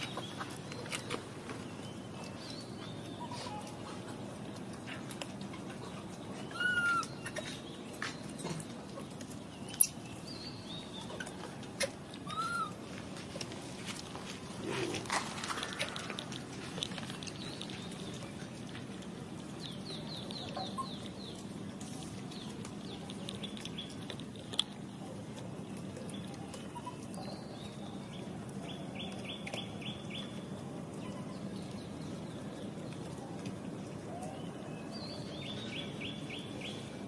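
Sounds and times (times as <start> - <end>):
steady low background hum: 0.0 - 37.0.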